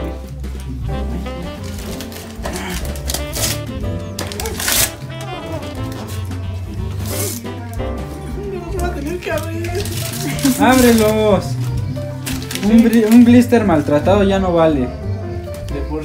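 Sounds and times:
background music with bass line: 0.0s - 16.0s
paper rustling: 0.1s - 14.1s
wrapping paper tearing: 0.1s - 14.1s.

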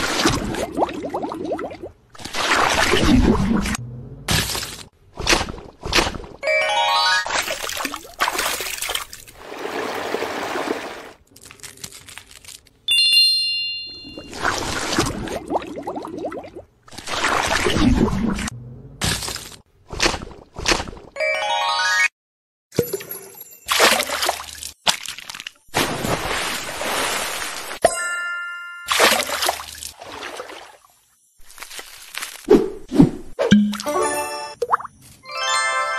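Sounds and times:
high bell-like ding: 12.9s - 14.3s.

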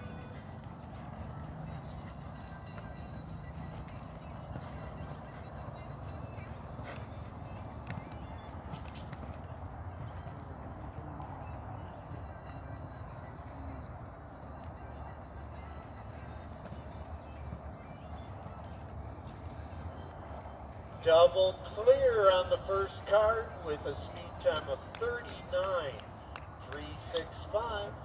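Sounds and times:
horse hoofbeats on sand: 0.0s - 28.0s
low outdoor rumble: 0.0s - 28.0s.

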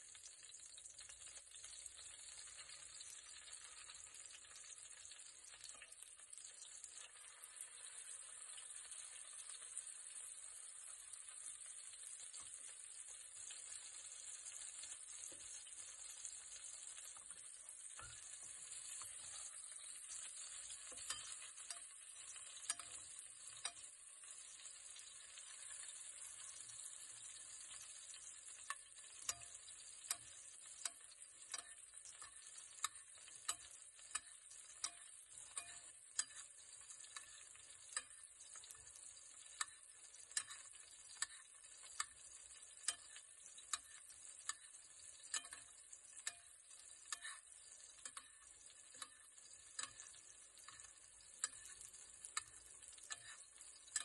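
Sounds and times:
steak sizzling in a pan: 0.0s - 54.0s
spoon clinking against pan: 18.0s - 26.7s, 27.5s - 54.0s.

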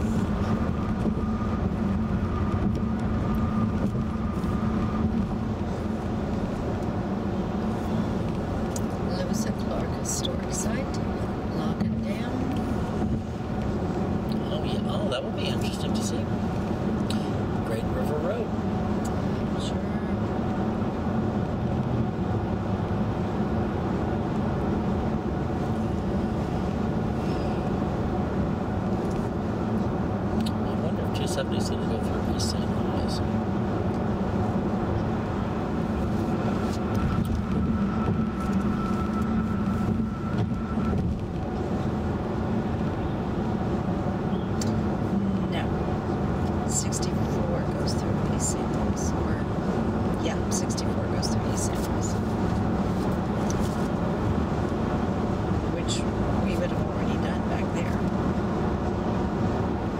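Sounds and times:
road and tyre noise in car: 0.0s - 59.9s.

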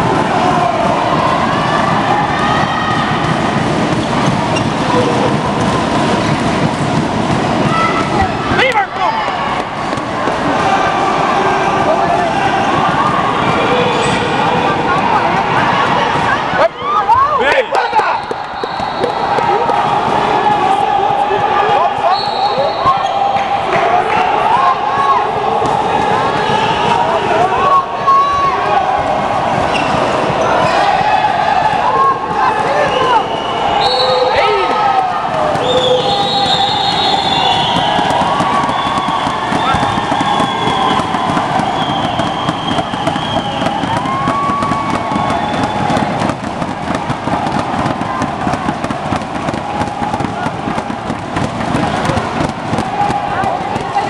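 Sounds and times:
spectators chattering and shouting: 0.0s - 54.0s
ball bouncing on court: 1.2s - 10.4s, 35.3s - 54.0s
sneakers squeaking on floor: 3.9s - 5.3s, 17.9s - 19.4s, 22.1s - 23.4s, 29.7s - 30.7s.

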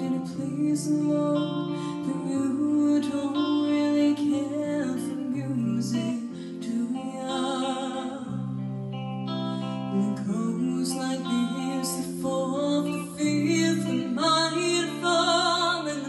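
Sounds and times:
girl singing into microphone: 0.0s - 8.8s, 9.4s - 16.0s.

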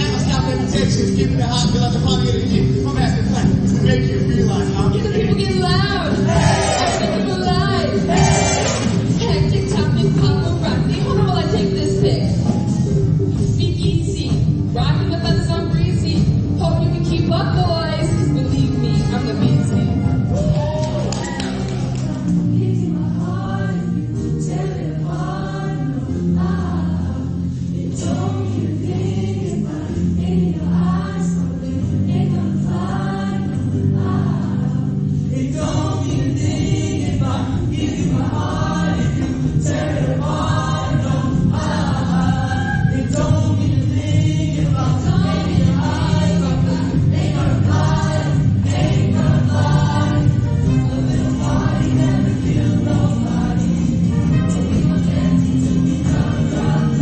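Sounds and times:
choir singing in parts: 6.0s - 10.5s, 20.2s - 57.0s.

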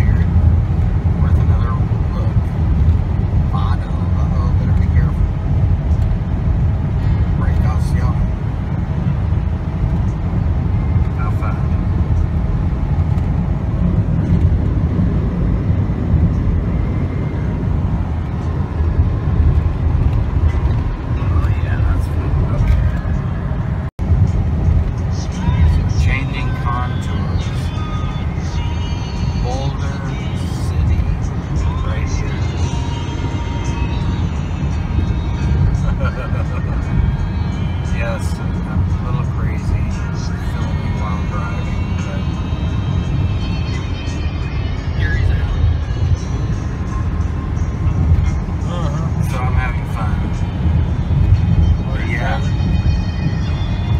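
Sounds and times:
road and engine rumble in truck cabin: 0.0s - 53.9s.

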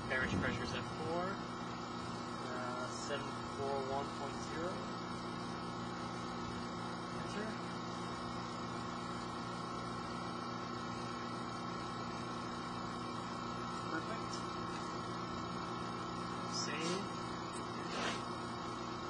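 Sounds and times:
machinery hum: 0.0s - 19.0s.

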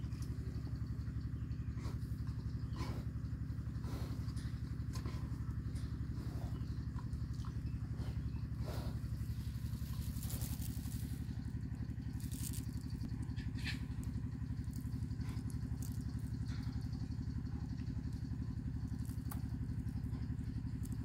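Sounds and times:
small engine idling: 0.0s - 21.0s
faint clicks and crackles: 4.2s - 21.0s.

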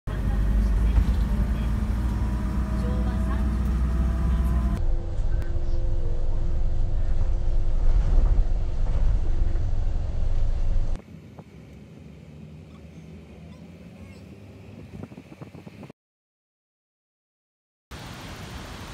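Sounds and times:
bus engine and road rumble: 0.1s - 15.9s, 18.0s - 18.9s
faint whine: 0.8s - 15.9s.

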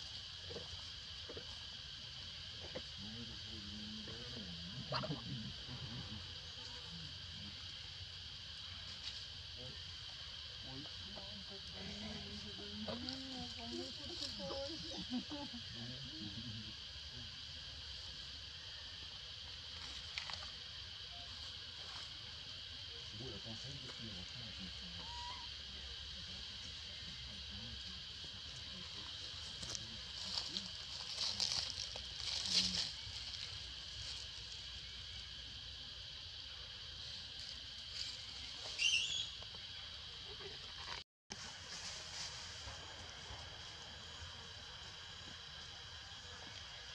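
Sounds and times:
insects droning: 0.0s - 46.9s.

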